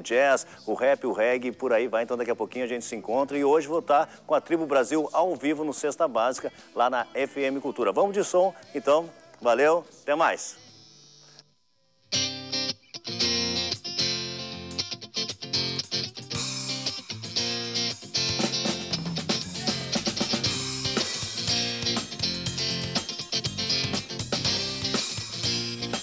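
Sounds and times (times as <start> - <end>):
electric guitar: 12.1 - 26.0
electric bass: 13.2 - 26.0
drum kit: 13.6 - 26.0.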